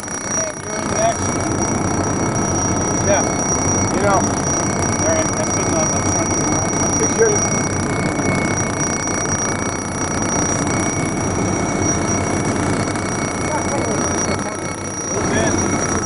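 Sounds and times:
high-pitched whines: 0.0s - 16.0s
machine noise: 0.0s - 16.0s.

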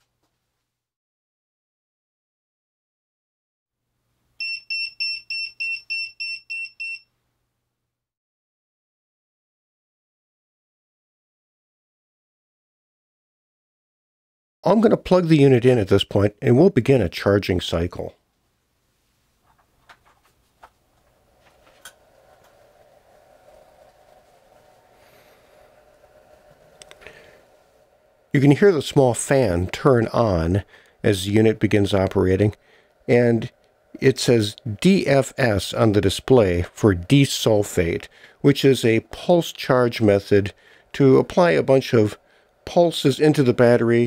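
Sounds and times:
small cooling fan humming: 18.4s - 44.0s.

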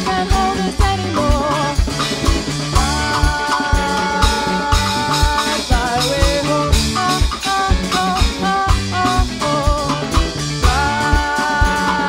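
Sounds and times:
acoustic and electric guitars: 0.0s - 12.0s
djembe beat: 0.0s - 12.0s
drum kit beat: 0.0s - 12.0s
wavering melody line: 0.0s - 12.0s.

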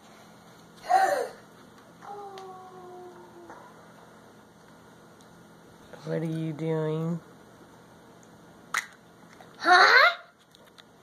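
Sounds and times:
person humming: 2.0s - 3.6s.

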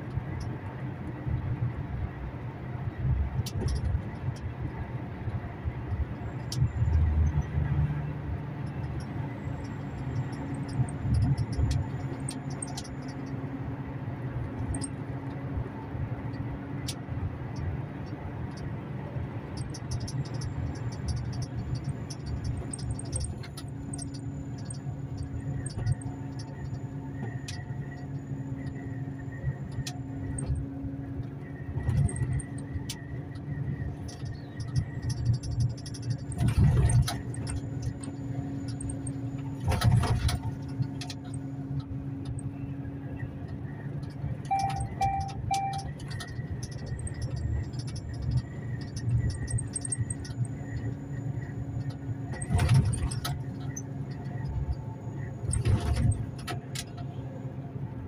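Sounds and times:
road noise: 0.0s - 58.0s
truck engine drone: 0.0s - 58.0s
short high beeps: 44.5s - 46.0s.

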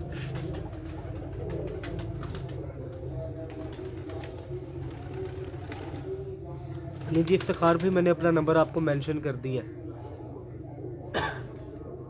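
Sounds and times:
pigeons cooing: 0.0s - 12.0s.

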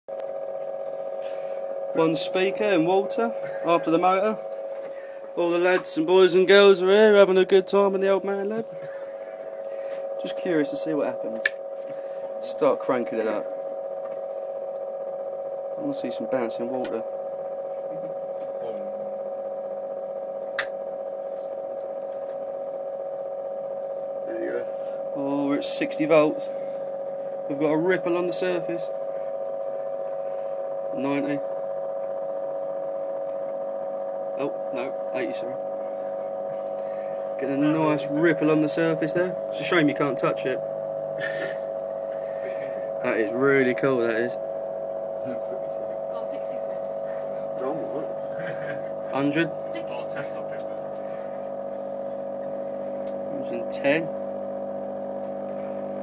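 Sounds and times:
electrical hum of two tones: 0.1s - 56.0s
subwoofer buzzing in water: 0.1s - 56.0s
sharp click: 11.4s - 11.6s, 20.6s - 20.8s.

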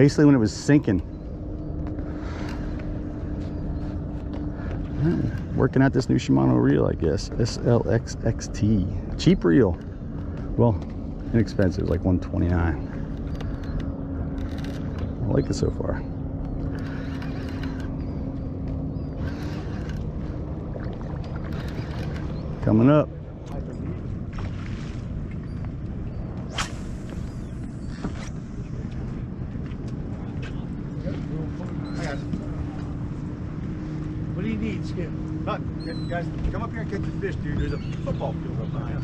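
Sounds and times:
boat motor hum: 0.0s - 39.0s
water noise: 0.0s - 39.0s
wind: 0.0s - 39.0s.

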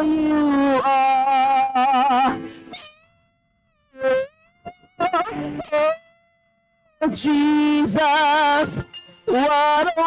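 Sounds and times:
woman singing: 0.0s - 2.5s, 7.0s - 10.0s
thin steady whine-like tone: 0.0s - 10.0s.

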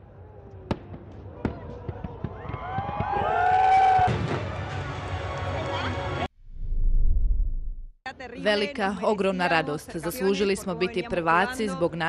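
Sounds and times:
fireworks bangs and crackles: 0.0s - 5.3s.

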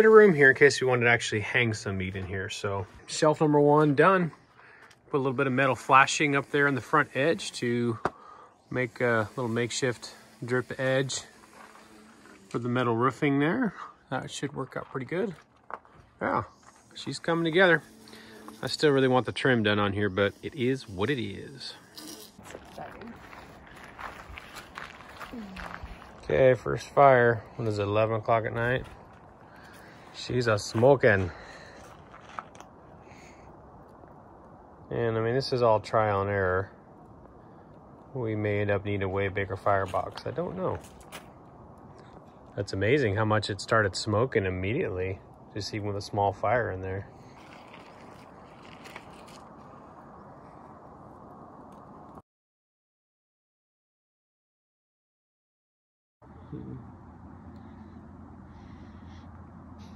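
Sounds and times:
footsteps on gravel and grass: 9.3s - 12.5s, 14.4s - 18.6s, 22.0s - 32.8s, 39.7s - 41.4s, 47.2s - 49.7s.

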